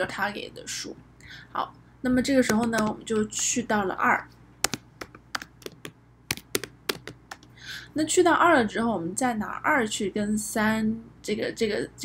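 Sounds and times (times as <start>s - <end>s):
keyboard typing: 2.4s - 3.6s, 4.6s - 7.5s.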